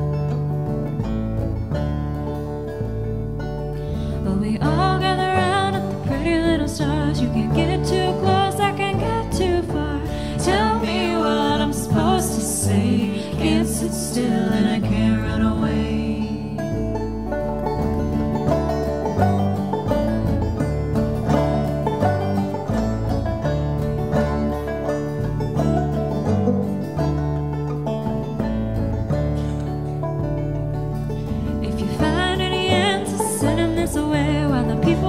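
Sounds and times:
picked banjo: 0.0 - 35.0
strummed acoustic guitar: 0.0 - 35.0
upright bass notes: 0.0 - 35.0.

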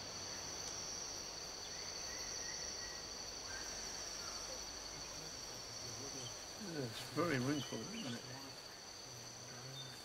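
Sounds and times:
faint background hiss: 0.0 - 10.0
insects droning: 0.0 - 10.0.

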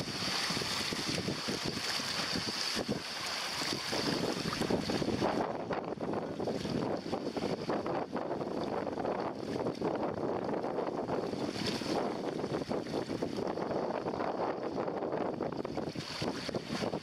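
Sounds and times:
water splashing along hull: 0.0 - 17.0
wind blowing over microphone: 0.0 - 17.0.

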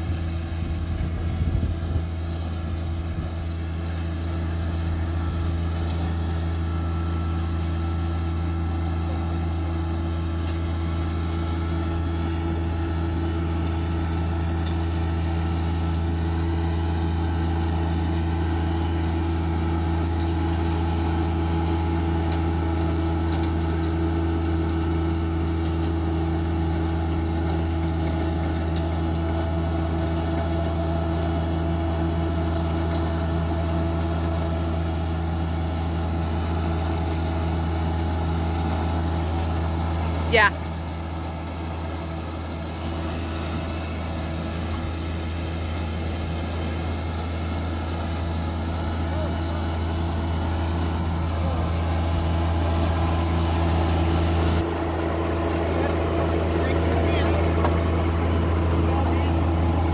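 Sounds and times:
baler rolling hay: 0.0 - 59.9
tractor engine running under load: 0.0 - 59.9.

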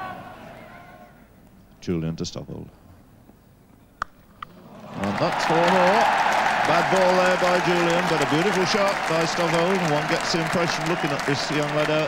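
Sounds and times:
crowd noise: 4.5 - 12.0.

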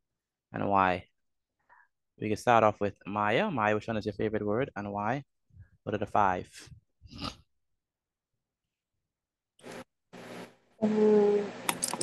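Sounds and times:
scratchy microphone noise: 9.6 - 10.6
girl speaking: 10.8 - 12.0.

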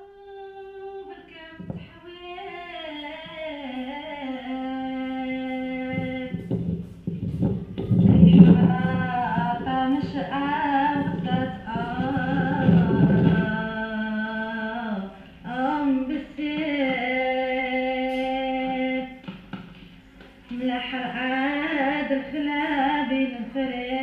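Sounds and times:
woman singing folk song: 0.0 - 6.6, 7.8 - 19.3, 20.5 - 24.0.

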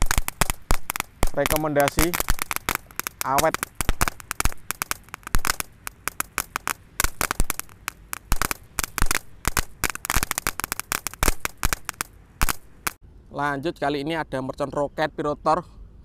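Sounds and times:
crackling firework fountain: 0.0 - 13.0.

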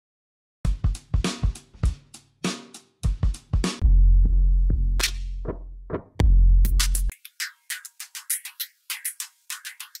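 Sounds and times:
drum kit groove: 0.6 - 10.0.

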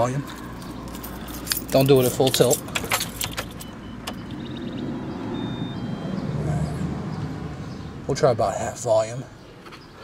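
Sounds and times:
short high electronic beeps: 3.6 - 6.2.

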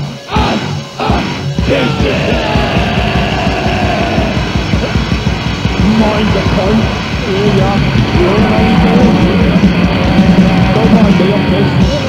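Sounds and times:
distorted doom metal: 0.0 - 12.0
guitar line sliding in pitch: 3.2 - 12.0.

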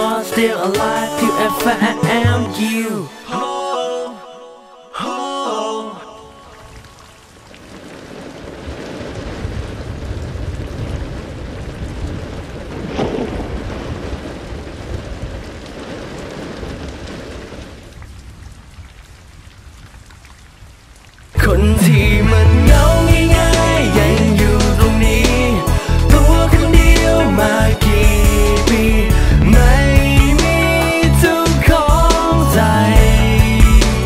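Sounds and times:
loud music: 0.0 - 3.5, 21.4 - 34.0
rain falling: 6.4 - 34.0
low thunder rumbling: 7.7 - 19.0, 27.9 - 30.8.

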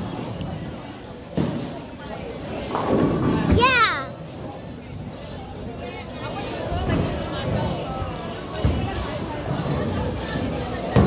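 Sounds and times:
bowling alley background noise: 0.0 - 11.0.

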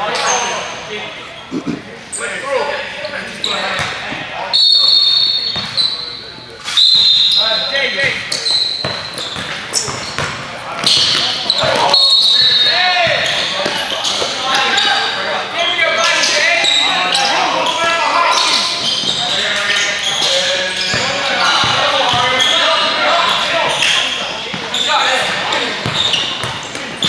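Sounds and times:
sneakers squeaking: 3.3 - 15.2, 16.0 - 27.0.

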